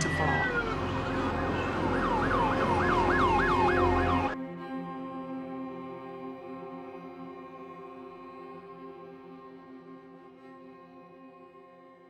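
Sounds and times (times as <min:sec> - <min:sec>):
emergency siren yelping: 0:00.0 - 0:04.4.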